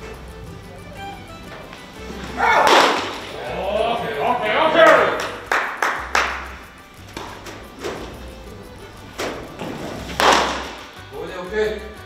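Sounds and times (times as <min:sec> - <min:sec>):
sharp smacks echoing in hall: 0:01.5 - 0:03.5, 0:04.9 - 0:08.2, 0:08.9 - 0:11.0.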